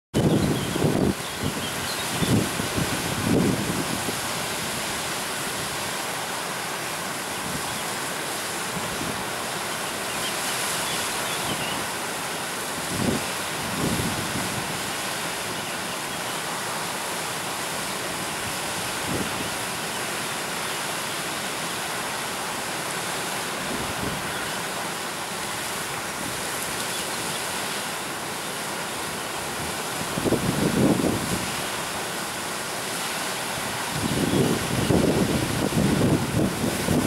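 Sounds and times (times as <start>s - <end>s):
low water surges: 0.2s - 37.0s
river water rushing: 0.2s - 37.0s.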